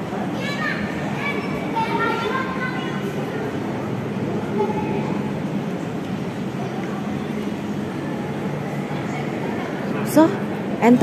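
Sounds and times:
indoor hall low hum: 0:00.0 - 0:11.0.

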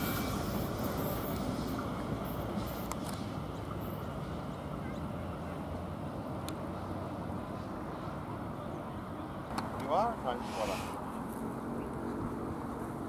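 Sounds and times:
electric train rumbling on track: 0:00.0 - 0:13.0.

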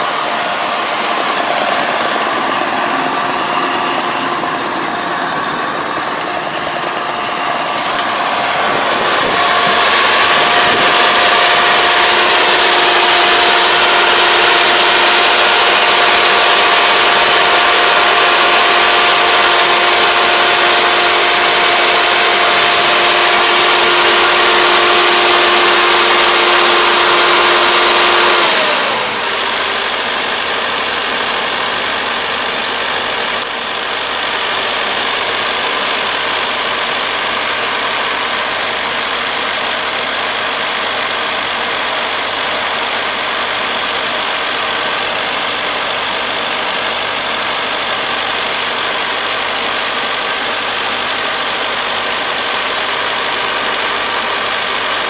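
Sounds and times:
combine harvester running: 0:00.0 - 0:55.0.

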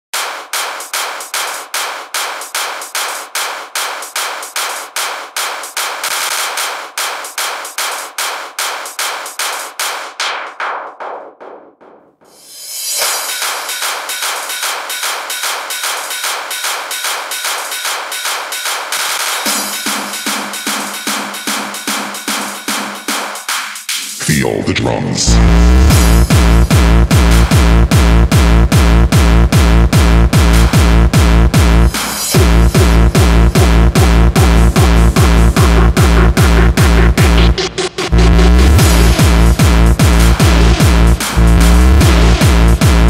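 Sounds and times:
rapid electronic drum pattern: 0:00.1 - 0:43.0
bass line: 0:24.2 - 0:43.0.

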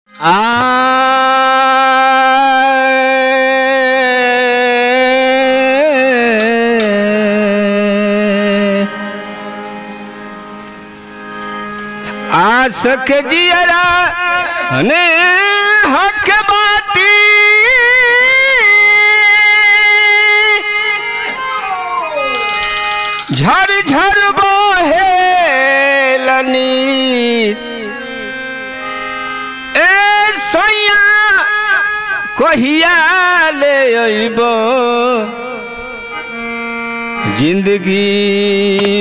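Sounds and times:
man singing long note: 0:00.2 - 0:09.4, 0:23.3 - 0:28.4
man singing held high note: 0:12.9 - 0:27.7.

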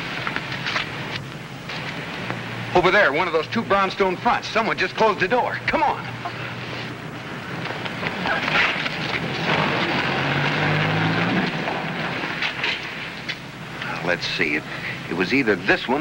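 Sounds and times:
car driving past: 0:07.5 - 0:13.1.

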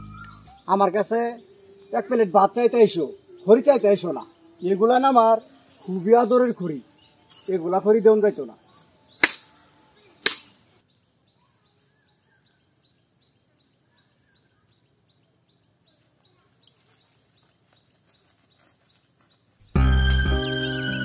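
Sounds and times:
machete chopping bamboo: 0:09.2 - 0:09.5, 0:10.2 - 0:10.6.

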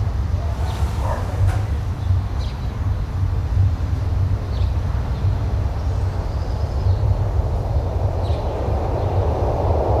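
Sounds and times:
low vehicle rumble: 0:00.0 - 0:10.0
hiss: 0:00.4 - 0:02.0.

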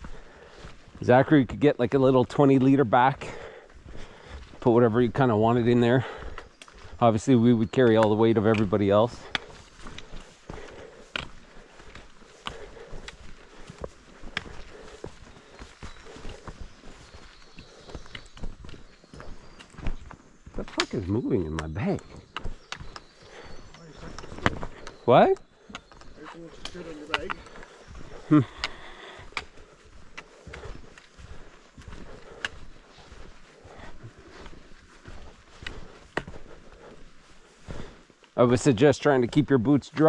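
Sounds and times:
footsteps on rocky trail: 0:00.0 - 0:40.0.

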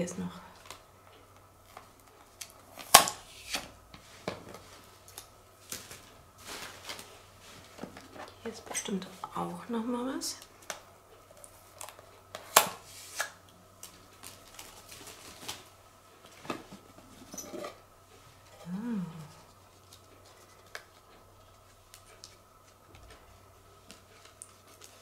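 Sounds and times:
person humming: 0:18.5 - 0:19.6.

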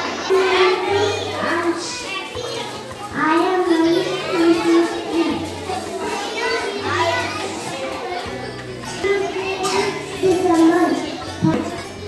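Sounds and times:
background music: 0:00.0 - 0:12.0
children's voices: 0:00.0 - 0:12.0.

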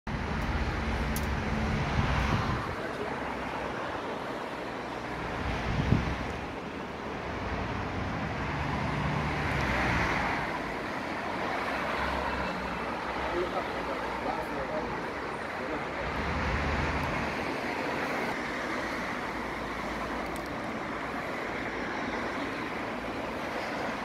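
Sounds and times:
rumble of passing vehicles: 0:00.1 - 0:24.0.

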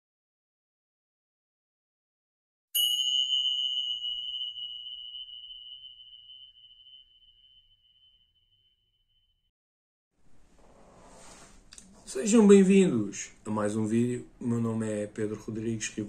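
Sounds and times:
bright chime ringing: 0:02.8 - 0:08.5.

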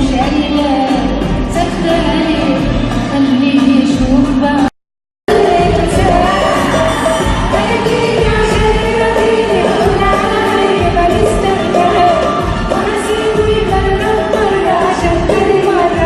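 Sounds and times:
live pop band with singer: 0:00.0 - 0:04.7, 0:05.3 - 0:16.0.

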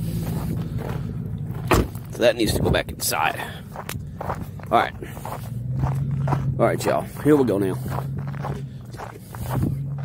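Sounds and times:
car door shutting: 0:01.6 - 0:02.0.

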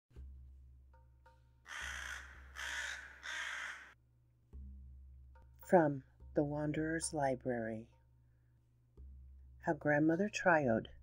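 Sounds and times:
crow cawing: 0:01.7 - 0:04.0.

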